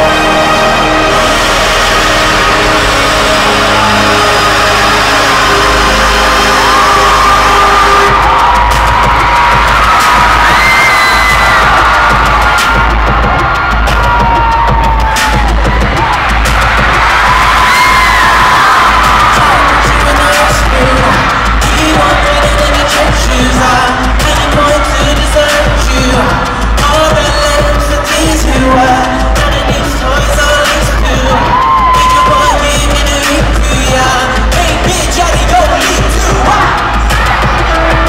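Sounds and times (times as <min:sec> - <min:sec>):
concert music with heavy bass: 0:00.0 - 0:38.0
crowd screaming and cheering: 0:00.0 - 0:38.0.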